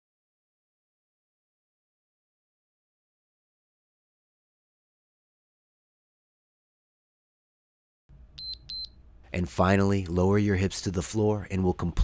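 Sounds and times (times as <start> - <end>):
short high electronic beeps: 8.4 - 8.9.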